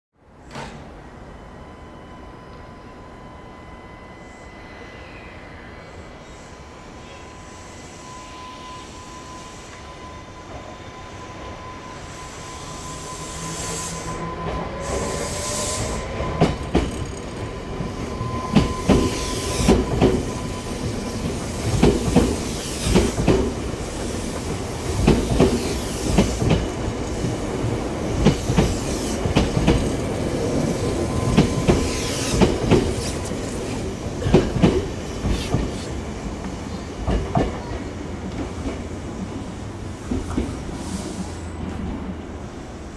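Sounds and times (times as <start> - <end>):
electric train motor whine: 7.3 - 21.6
wheel squeal: 11.8 - 21.2, 30.6 - 33.8
train wheels clacking over rail joints: 16.2 - 17.5, 21.2 - 30.2, 31.2 - 36.0.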